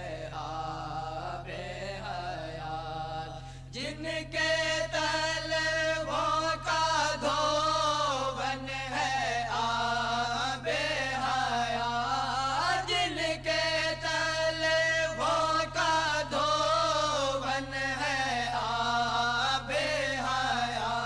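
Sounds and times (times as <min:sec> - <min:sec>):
man singing devotional song: 0:00.0 - 0:21.0
steady low hum: 0:00.0 - 0:21.0.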